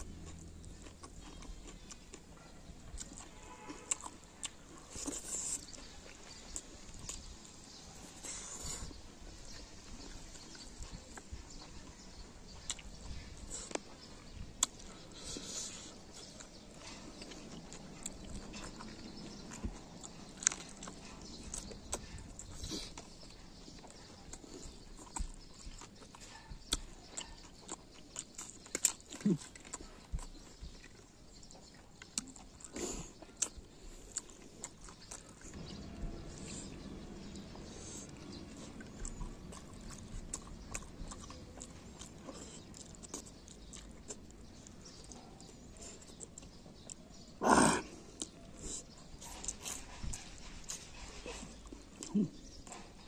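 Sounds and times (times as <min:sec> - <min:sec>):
person chewing with wet clicks: 0:00.0 - 0:53.0.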